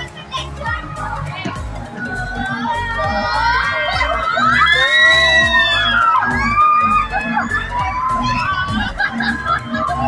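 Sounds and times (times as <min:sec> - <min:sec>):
music with a low beat: 0:00.0 - 0:10.0
riders screaming together: 0:03.1 - 0:10.0.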